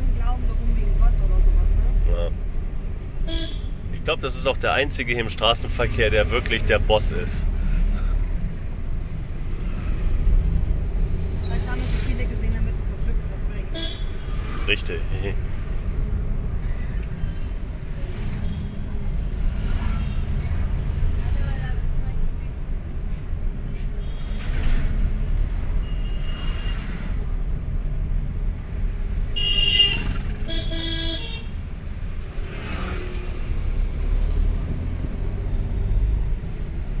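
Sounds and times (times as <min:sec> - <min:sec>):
car engine and road rumble: 0:00.0 - 0:37.0
vehicle horns honking: 0:03.2 - 0:03.8, 0:13.7 - 0:14.5, 0:25.8 - 0:26.9, 0:29.4 - 0:31.6.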